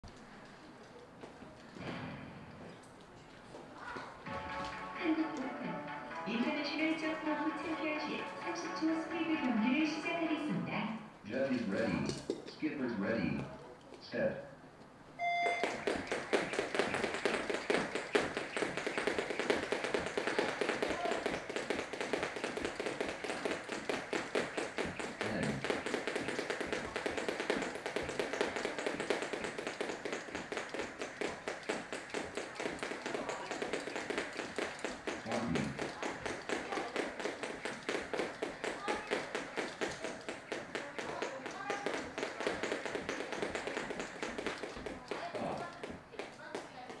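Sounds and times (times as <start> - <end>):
jumpers landing: 15.4 - 47.0
skipping ropes tapping on floor: 15.4 - 47.0.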